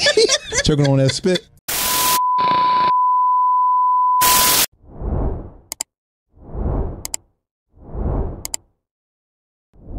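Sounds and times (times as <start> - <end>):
static hiss bursts: 1.7 - 2.2.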